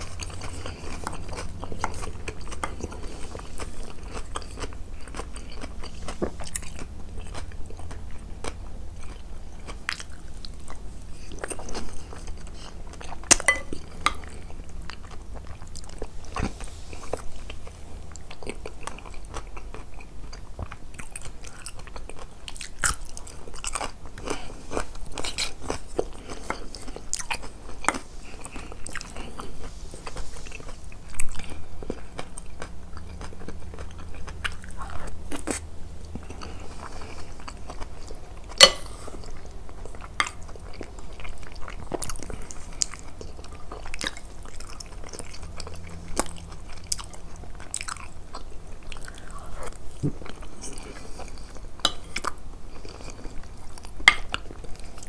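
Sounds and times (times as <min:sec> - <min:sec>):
close chewing: 0:00.0 - 0:55.0.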